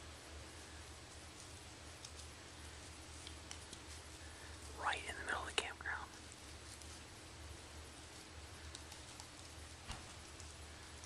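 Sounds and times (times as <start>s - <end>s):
person whispering: 4.7s - 6.2s.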